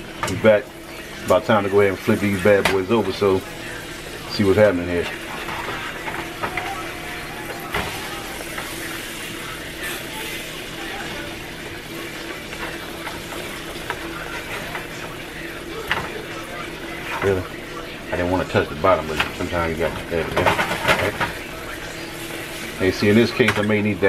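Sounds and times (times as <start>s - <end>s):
steaks sizzling in oil: 0.0s - 24.0s
spatula scraping and knocking pan: 5.0s - 9.2s.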